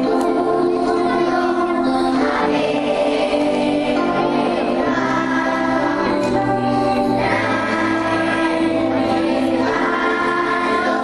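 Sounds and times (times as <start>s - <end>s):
children's choir singing: 0.0s - 11.0s
instrumental accompaniment: 0.0s - 11.0s.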